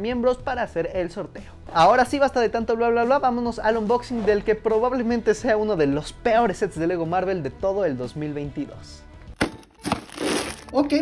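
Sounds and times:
plastic bags crinkling: 9.8s - 10.9s.

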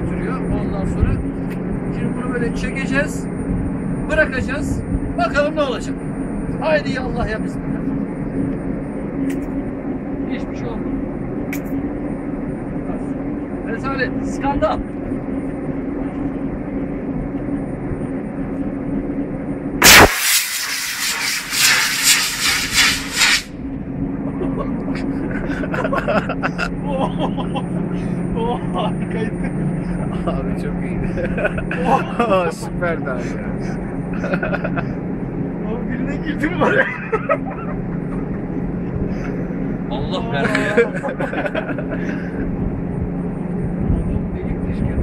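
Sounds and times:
rocket launch blast: 19.8s - 23.6s
rocket motor rushing hiss: 19.8s - 23.6s
ship engine humming: 20.5s - 44.4s
people laughing: 24.4s - 27.8s, 31.0s - 32.6s, 34.1s - 35.0s, 36.4s - 39.4s, 40.2s - 42.5s.

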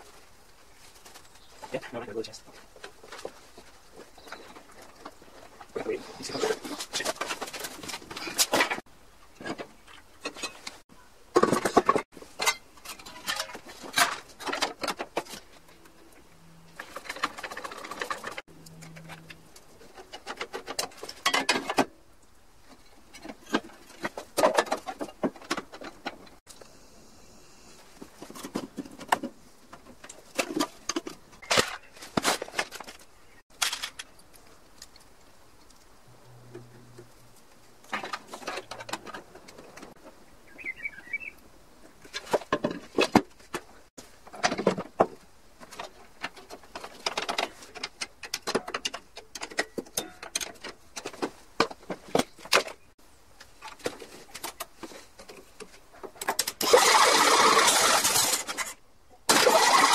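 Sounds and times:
metal tools clanking and scraping: 9.4s - 10.8s, 11.4s - 15.9s, 16.7s - 21.9s, 45.7s - 51.3s.

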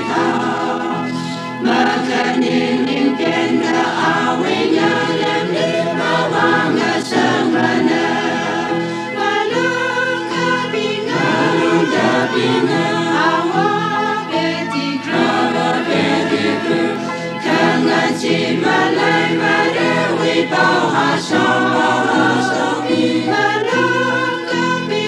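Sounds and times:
choir singing gospel: 0.0s - 25.0s.

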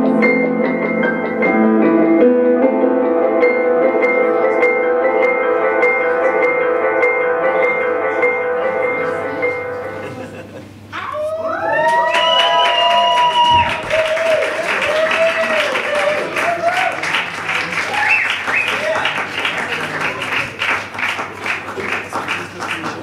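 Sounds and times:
audience cheering and whooping: 10.9s - 19.3s
audience applause: 11.5s - 23.0s.

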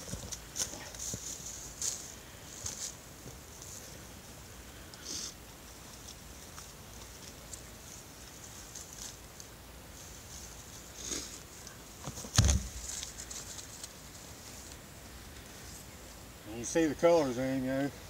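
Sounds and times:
dry leaves and grass rustling: 0.0s - 18.0s
loud thump: 12.2s - 12.8s.

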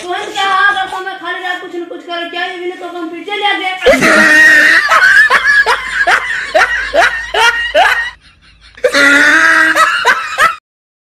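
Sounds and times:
person laughing: 3.8s - 10.6s.

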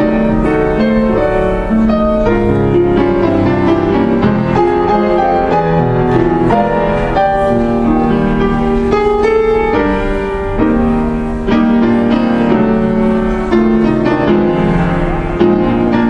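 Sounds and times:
slow gentle keyboard music: 0.0s - 16.0s.

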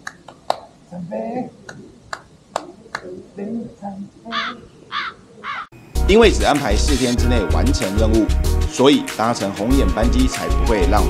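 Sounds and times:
crow cawing: 4.3s - 5.7s
music: 5.9s - 11.0s.

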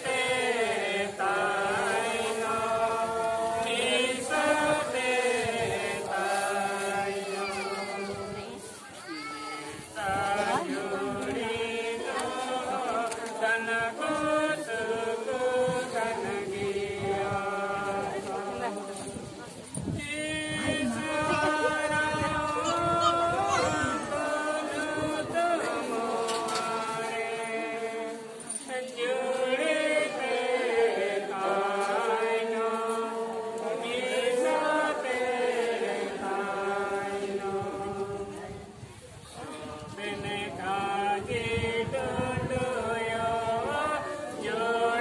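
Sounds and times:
group singing in unison: 0.0s - 8.7s, 9.7s - 45.0s.

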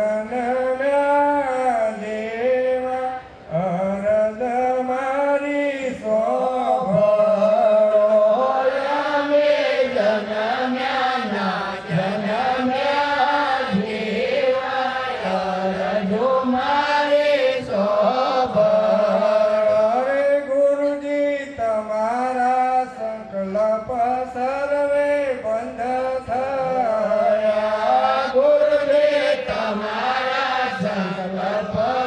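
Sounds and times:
voices chanting: 8.3s - 19.6s, 27.1s - 32.0s.

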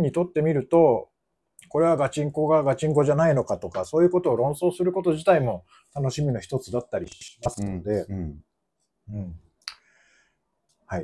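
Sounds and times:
man speaking: 1.6s - 8.4s, 9.1s - 9.5s.

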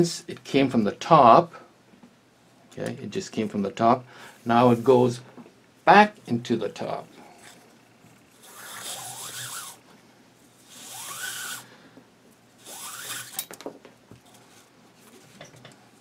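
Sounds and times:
cord rubbing through woven wrap: 8.4s - 9.8s, 10.6s - 11.7s, 12.6s - 13.4s.

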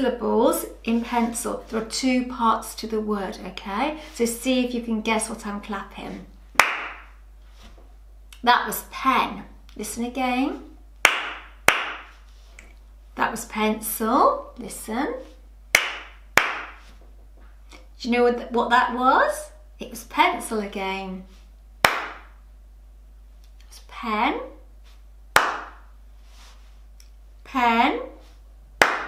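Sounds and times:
hand claps with room echo: 6.6s - 7.1s, 11.0s - 12.2s, 15.7s - 16.9s, 21.8s - 22.3s, 25.4s - 25.9s, 28.8s - 29.0s.

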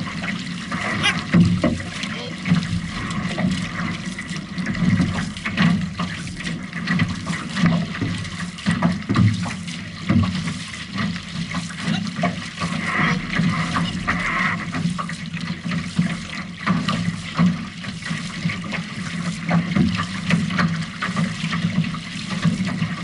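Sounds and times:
paddle strokes in water: 0.0s - 23.0s
water rushing along hull: 0.0s - 23.0s.

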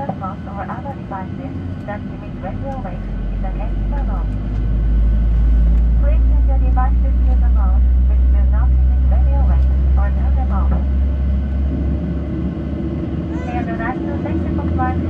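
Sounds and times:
cabin announcement: 0.0s - 4.3s, 6.0s - 10.9s, 13.3s - 15.0s
jet engines low rumble: 0.0s - 15.0s.

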